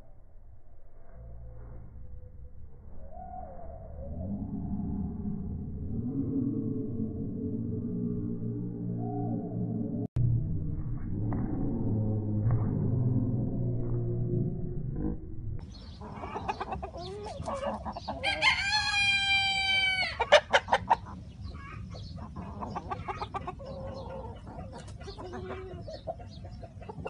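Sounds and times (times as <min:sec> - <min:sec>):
chickens clucking: 0:15.6 - 0:27.0
rooster crowing: 0:18.2 - 0:20.3.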